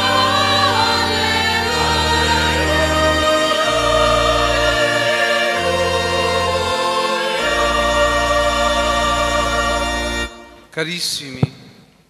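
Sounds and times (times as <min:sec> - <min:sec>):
church choir singing: 0:00.0 - 0:10.7.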